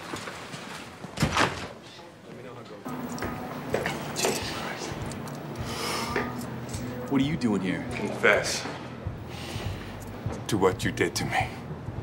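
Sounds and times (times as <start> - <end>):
steady low drone: 2.9 - 12.0.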